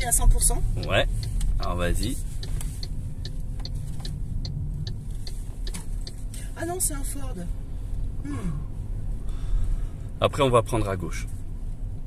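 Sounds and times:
road and tyre rumble: 0.0s - 12.0s
light ticks: 0.4s - 6.5s.

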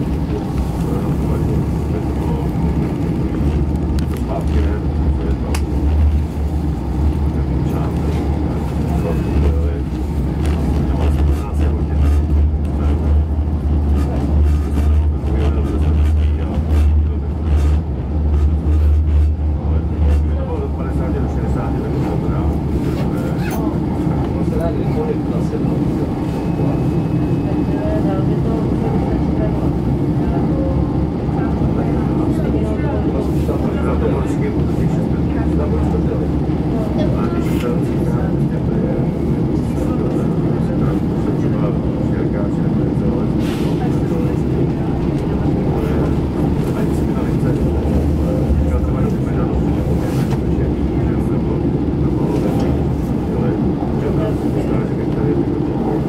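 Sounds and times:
train wheel running noise: 0.0s - 30.6s, 31.3s - 56.0s
train engine drone: 0.0s - 56.0s.

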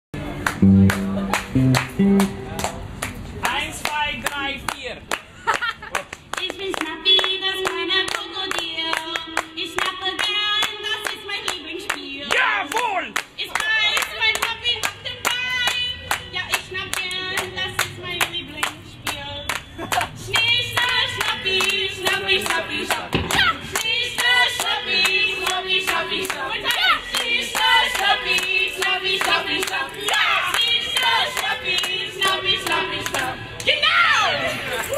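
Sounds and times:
crowd clapping in rhythm: 0.2s - 33.8s
strummed electric guitar: 0.4s - 2.9s
people singing: 13.4s - 19.3s, 20.3s - 34.9s.

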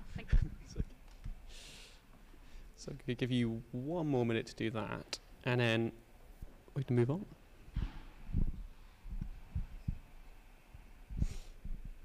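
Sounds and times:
faint room hum: 0.0s - 12.0s
soft low thumps on microphone: 7.7s - 10.1s.

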